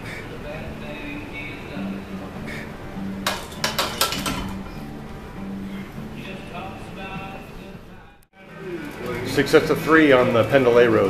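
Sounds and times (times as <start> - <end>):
background music: 0.0 - 11.0
metallic barbell plates clanking: 3.2 - 4.9.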